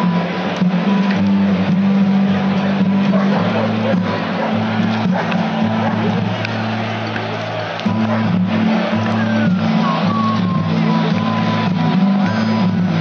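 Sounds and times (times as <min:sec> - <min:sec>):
heavy bass line: 0:00.0 - 0:13.0.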